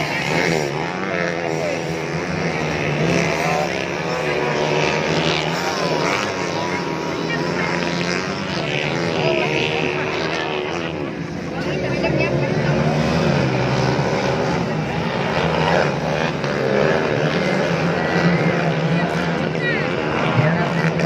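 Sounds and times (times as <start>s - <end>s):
distant motocross engines revving: 0.0s - 21.0s.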